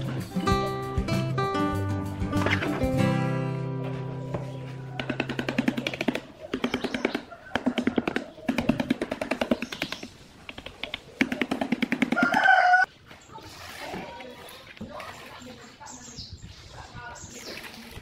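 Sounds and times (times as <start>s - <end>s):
chicken-like call: 12.1s - 12.9s.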